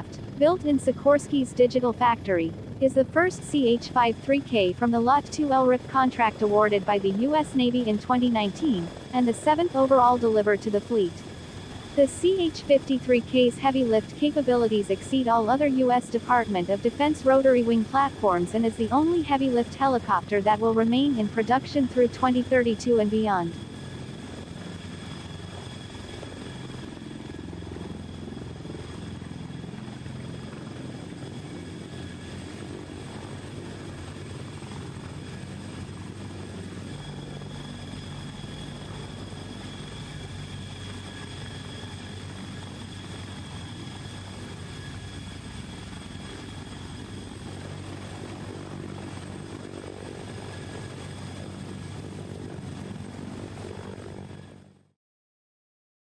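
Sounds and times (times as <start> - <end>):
high-pitched engine whine: 0.0 - 54.9
helicopter rotor and engine noise: 0.0 - 55.0.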